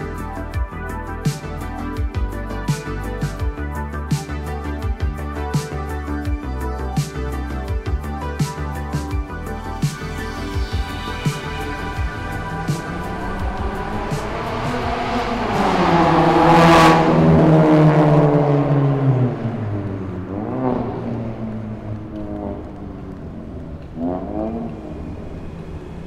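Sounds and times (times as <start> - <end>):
car driving past: 11.2 - 26.0.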